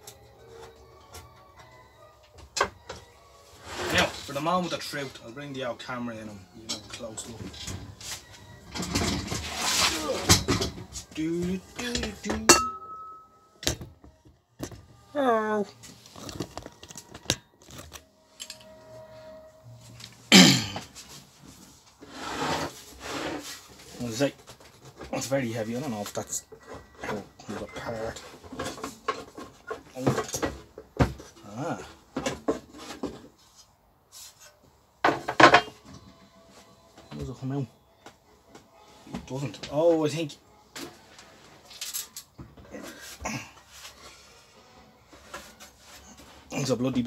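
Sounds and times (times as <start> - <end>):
metal panel scraping: 22.0 - 23.6.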